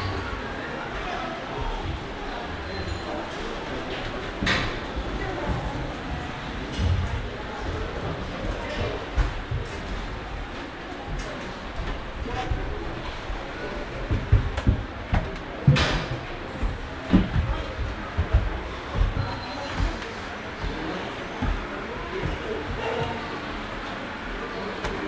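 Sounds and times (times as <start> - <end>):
murmur of voices in hall: 0.0 - 25.0.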